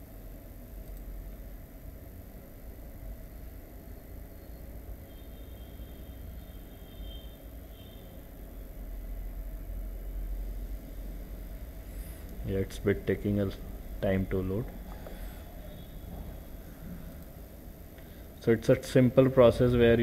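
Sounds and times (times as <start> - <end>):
low background rumble and hiss: 0.0 - 20.0.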